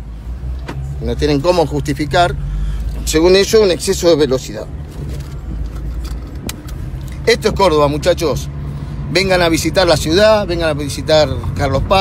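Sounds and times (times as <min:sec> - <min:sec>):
car engine low rumble: 0:00.0 - 0:12.0.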